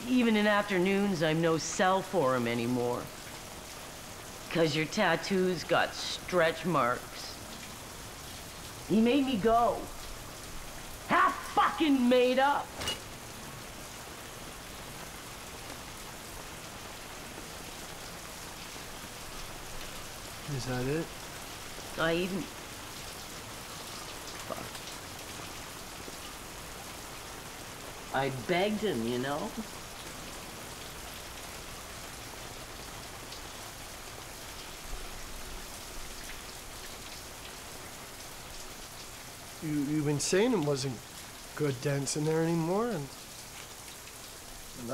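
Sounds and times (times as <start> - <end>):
shower running: 0.3 - 44.9.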